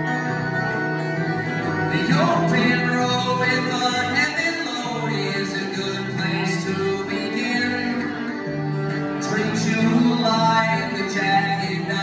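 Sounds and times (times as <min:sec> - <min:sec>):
acoustic guitar: 0:00.0 - 0:12.0
fiddle: 0:00.0 - 0:12.0
upright bass: 0:00.0 - 0:12.0.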